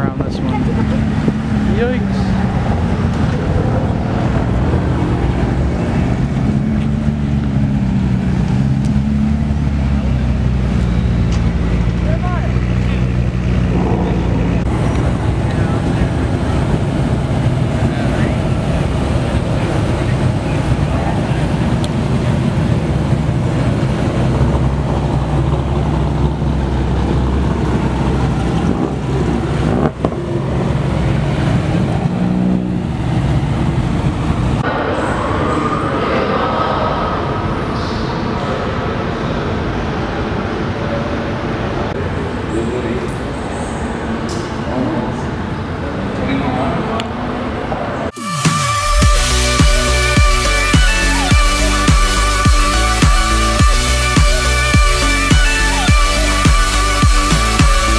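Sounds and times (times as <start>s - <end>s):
people talking: 0.0s - 4.4s, 11.6s - 22.8s, 34.6s - 57.9s
sports car driving past: 0.0s - 41.3s
sports car engine humming: 0.0s - 57.9s.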